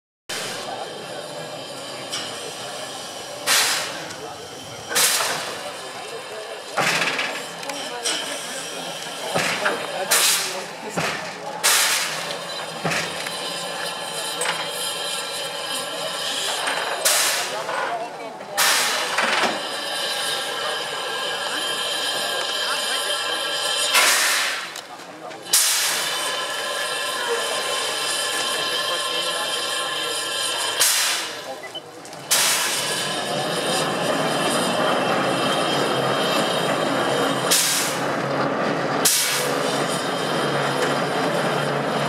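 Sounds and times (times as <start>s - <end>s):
loud bursts of steam: 0.3s - 17.8s, 18.5s - 42.0s
steam locomotive hissing: 0.3s - 42.0s.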